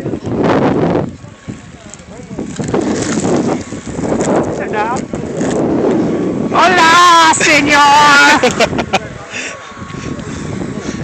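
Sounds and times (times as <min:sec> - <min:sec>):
scratchy rustling on microphone: 0:01.8 - 0:05.9.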